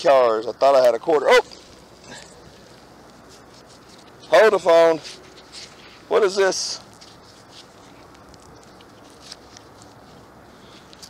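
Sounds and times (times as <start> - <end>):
gloved hands handling toy car: 2.5 - 11.0
scrape: 5.0 - 6.1
small ticks: 6.9 - 11.0.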